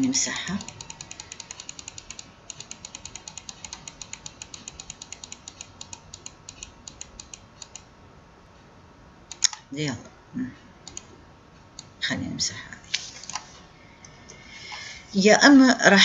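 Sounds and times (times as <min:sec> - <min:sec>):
computer mouse clicking rapidly: 0:00.0 - 0:07.9, 0:09.3 - 0:09.7, 0:10.8 - 0:11.1.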